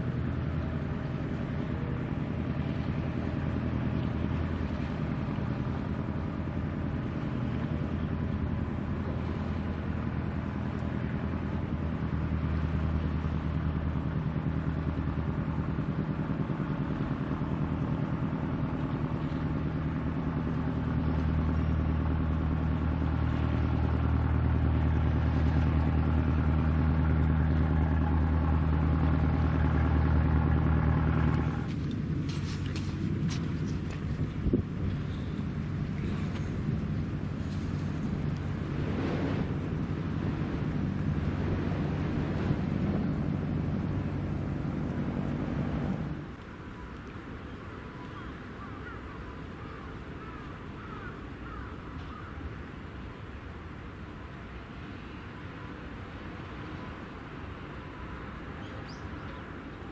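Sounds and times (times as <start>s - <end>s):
boat engine droning: 0.0s - 59.9s.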